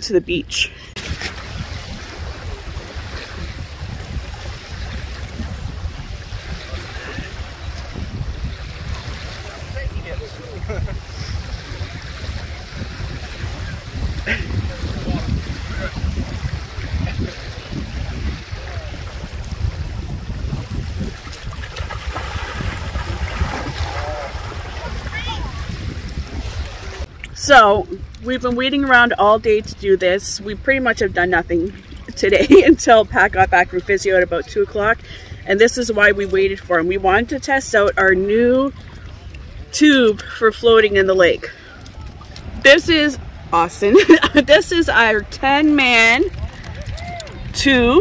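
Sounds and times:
lake waves on sandy shore: 0.0s - 48.0s
wind buffeting microphone: 0.0s - 48.0s.

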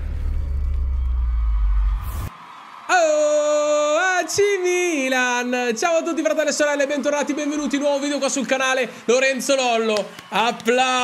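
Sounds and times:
deep bass drone: 0.0s - 2.3s.

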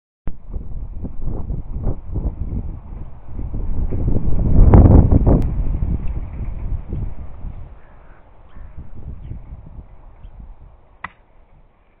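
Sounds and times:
wind buffeting microphone: 0.3s - 12.0s.

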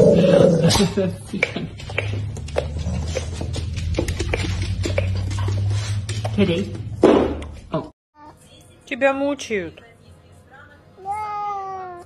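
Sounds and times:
dog growling: 0.0s - 1.0s.

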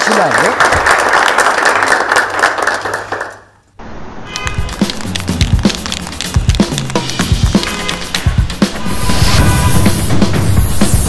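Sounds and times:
audience applause: 0.0s - 3.6s
music with drum beat and bass: 4.6s - 11.0s.

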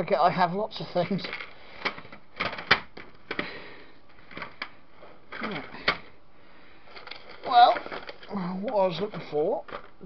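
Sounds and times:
small objects clicking and knocking: 1.0s - 6.1s, 6.8s - 10.0s.

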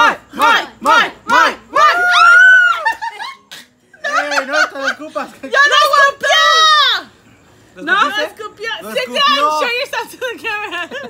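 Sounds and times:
people laughing: 2.6s - 5.5s, 10.1s - 11.0s.

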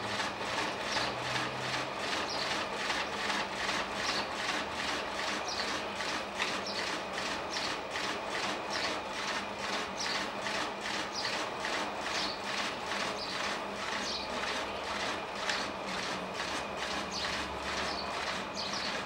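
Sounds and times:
potter's wheel swishing: 0.0s - 19.0s.

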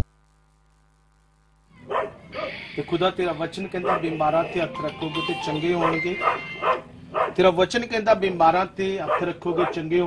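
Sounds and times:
man praying loudly: 3.2s - 6.4s.

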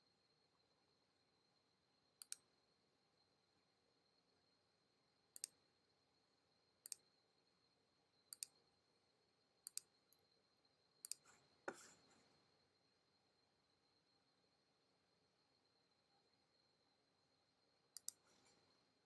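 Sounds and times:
mouse button clicks: 2.2s - 2.4s, 11.0s - 12.0s, 18.0s - 18.3s.

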